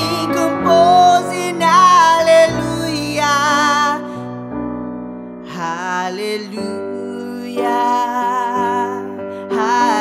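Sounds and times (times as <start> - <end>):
man singing: 0.0 - 4.5, 5.4 - 10.0
piano chords: 0.0 - 10.0.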